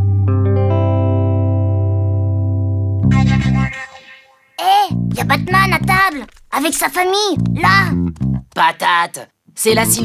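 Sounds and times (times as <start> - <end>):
high cartoon voice: 4.6 - 8.0.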